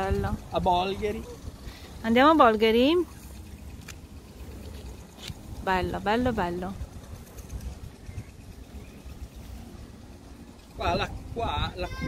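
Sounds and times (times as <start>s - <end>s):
wind rumble on microphone: 4.8s - 12.0s.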